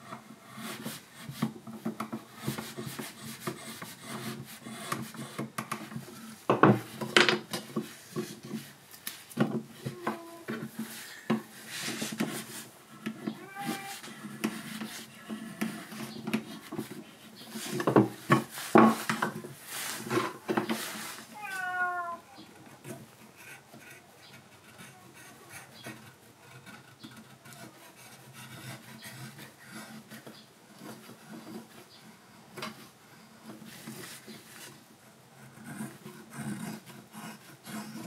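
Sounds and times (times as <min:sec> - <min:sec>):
chisel scraping wood: 0:09.4 - 0:21.8, 0:22.6 - 0:31.8, 0:35.4 - 0:38.0.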